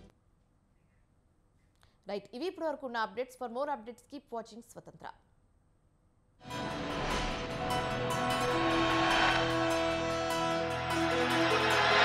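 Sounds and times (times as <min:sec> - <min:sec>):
electronic theme music: 0:06.4 - 0:12.0.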